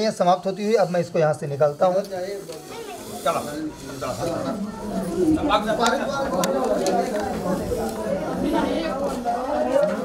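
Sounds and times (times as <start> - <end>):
people murmuring: 0.0 - 10.0.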